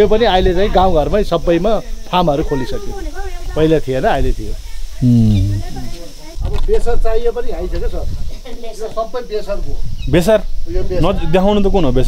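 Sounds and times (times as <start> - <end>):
men talking: 5.0 - 6.0.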